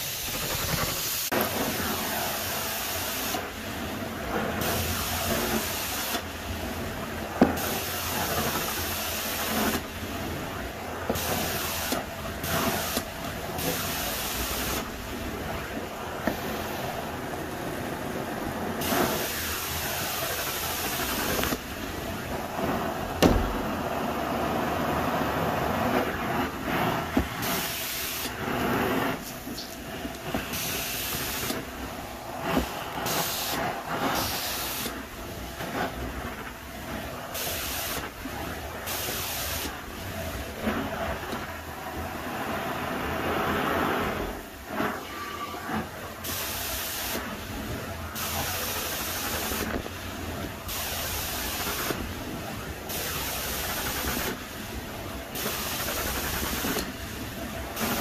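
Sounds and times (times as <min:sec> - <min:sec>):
carpet extractor suction roar: 0:00.0 - 0:58.0
sharp knocks: 0:23.2 - 0:23.6.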